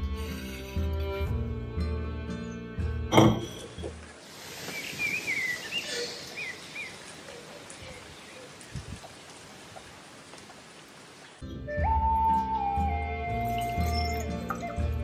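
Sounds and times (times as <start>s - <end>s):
background music: 0.0s - 4.1s, 11.4s - 15.0s
steady rain falling: 4.1s - 11.4s.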